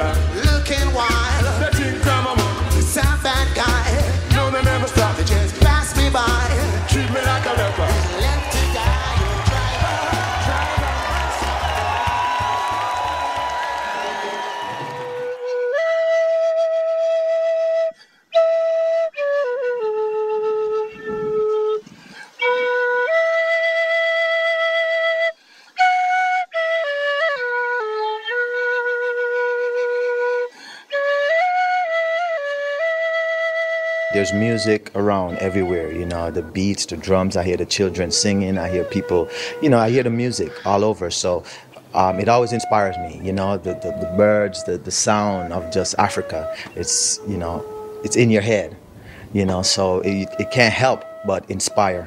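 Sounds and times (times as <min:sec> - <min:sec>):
live reggae band: 0:00.0 - 0:16.1
flute playing slow melody: 0:00.0 - 0:41.1, 0:41.8 - 0:52.0
crowd cheering: 0:05.7 - 0:15.5
short breaths: 0:17.9 - 0:18.4, 0:21.8 - 0:22.4, 0:25.3 - 0:25.8, 0:30.5 - 0:31.0, 0:39.3 - 0:39.6, 0:41.4 - 0:41.9, 0:46.5 - 0:46.8, 0:48.8 - 0:49.4.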